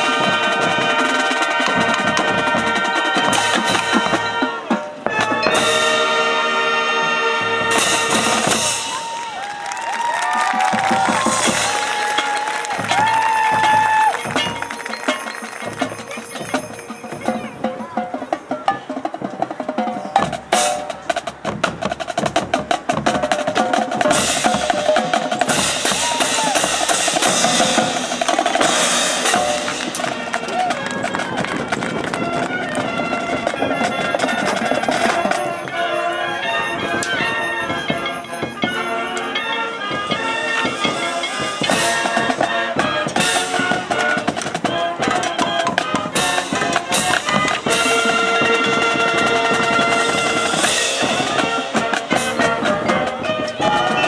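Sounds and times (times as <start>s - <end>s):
mallet percussion: 0.0s - 9.4s, 10.5s - 54.0s
horns holding long notes: 0.0s - 17.0s, 22.8s - 54.0s
marching drumline: 0.0s - 54.0s.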